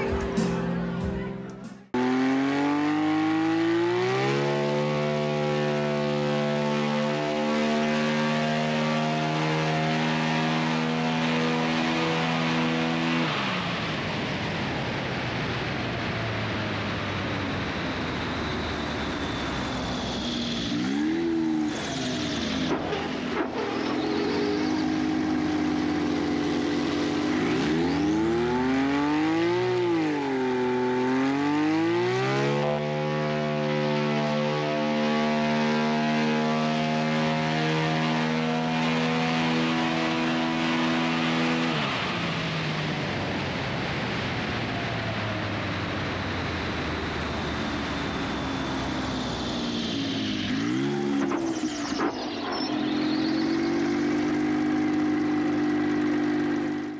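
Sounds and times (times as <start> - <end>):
propeller plane engine revving: 1.8 - 56.9.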